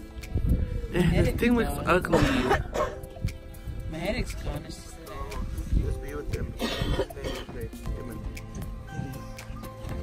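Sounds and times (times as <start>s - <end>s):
person coughing: 6.6s - 7.5s.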